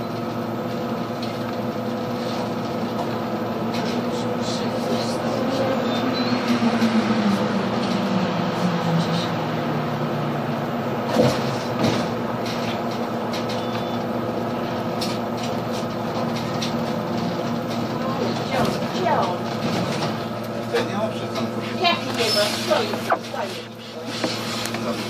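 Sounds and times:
bus drivetrain hum: 0:00.0 - 0:25.0
road noise: 0:00.0 - 0:25.0
voices talking: 0:04.0 - 0:07.2, 0:20.4 - 0:24.1.

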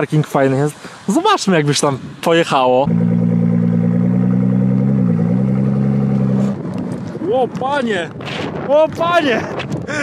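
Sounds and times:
car engine running at low revs: 0:02.9 - 0:07.2.

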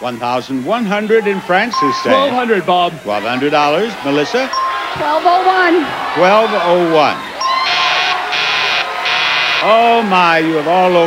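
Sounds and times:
game show buzzer blasts: 0:07.3 - 0:10.0.

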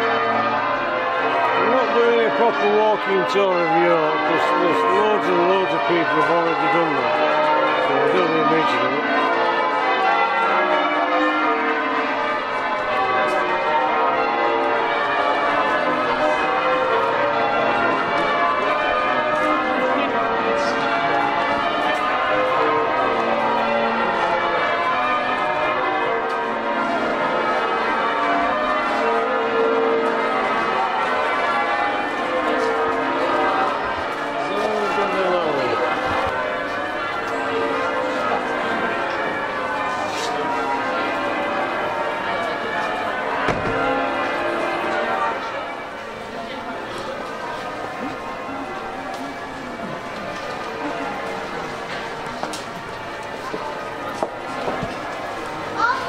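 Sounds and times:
church bells ringing: 0:00.0 - 0:56.0.

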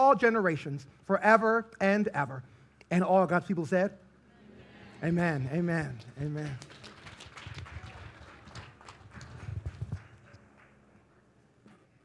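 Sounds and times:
knocks and clatter of crowd moving: 0:06.6 - 0:10.4.

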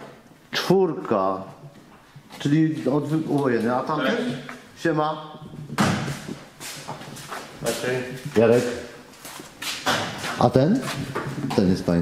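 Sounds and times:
men speaking: 0:00.5 - 0:01.7, 0:02.3 - 0:06.4, 0:07.3 - 0:09.1, 0:09.8 - 0:12.0.

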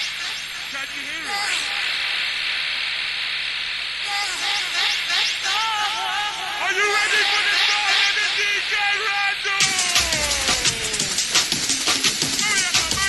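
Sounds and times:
steady hiss: 0:00.0 - 0:13.0
thin dance music: 0:09.6 - 0:13.0.

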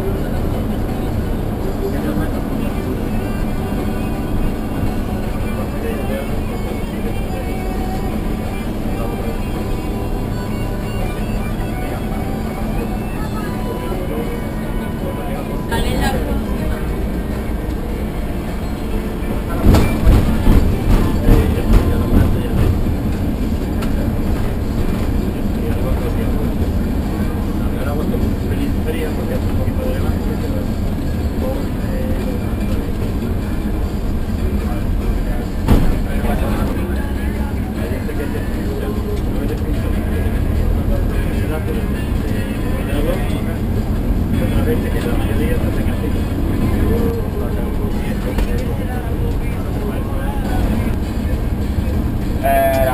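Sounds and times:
bus engine and road noise: 0:00.0 - 0:52.9
background music: 0:00.2 - 0:52.9.

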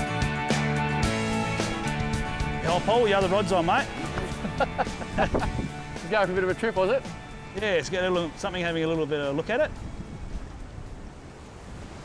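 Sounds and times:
small waves washing on shore: 0:01.2 - 0:12.0
wind rushing across microphone: 0:01.4 - 0:12.0.

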